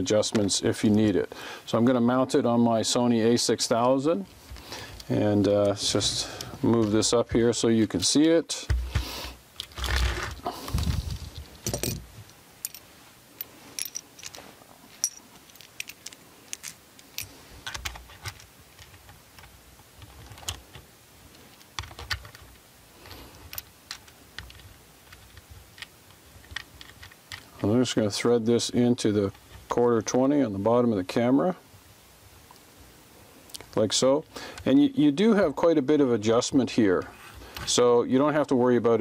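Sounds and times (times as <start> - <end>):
camera knocking and rubbing: 9.8 - 11.4.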